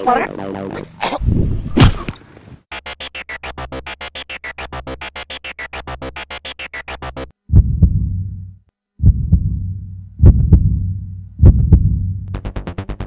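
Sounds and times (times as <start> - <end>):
fast pulsing synth: 0.0 - 1.0
heavy bass thuds: 7.4 - 12.4.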